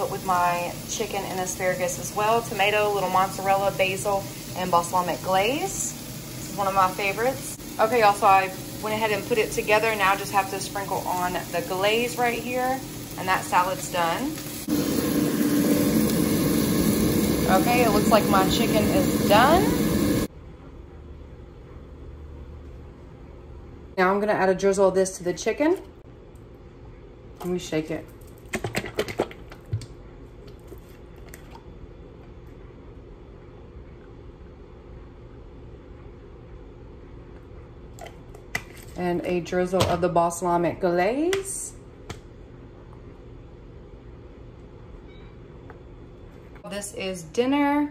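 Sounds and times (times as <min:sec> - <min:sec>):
air fryer fan humming: 0:00.0 - 0:20.6
low kitchen hum: 0:00.0 - 0:47.9.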